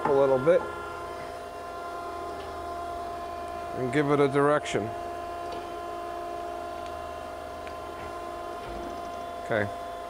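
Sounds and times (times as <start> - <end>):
grinder machine hum and whine: 0.0 - 10.0.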